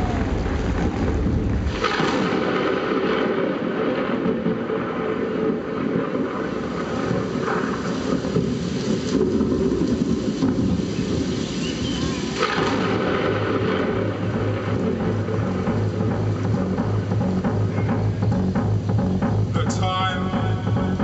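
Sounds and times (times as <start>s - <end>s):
crowd roar in a hall: 0.0s - 2.5s, 11.5s - 15.8s.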